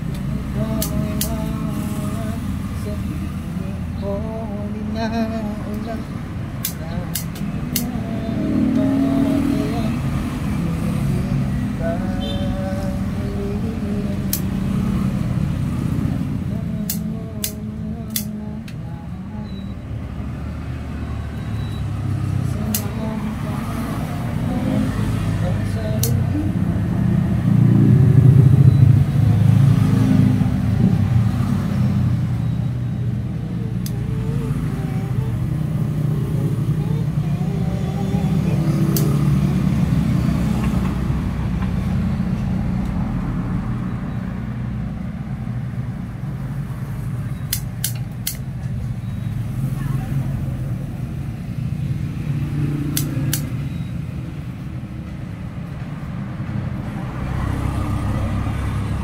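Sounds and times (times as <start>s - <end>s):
indistinct voices: 0.0s - 59.0s
road traffic rumble: 0.0s - 59.0s
short sharp clicks: 0.1s - 1.5s, 6.6s - 8.0s, 16.8s - 18.8s, 22.6s - 23.0s, 38.9s - 39.2s, 47.5s - 48.5s, 52.9s - 53.6s.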